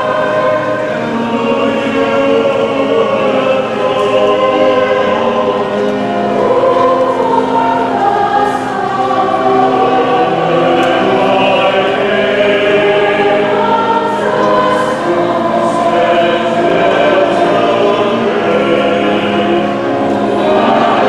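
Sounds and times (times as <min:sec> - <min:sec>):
choir singing in parts: 0:00.0 - 0:21.0.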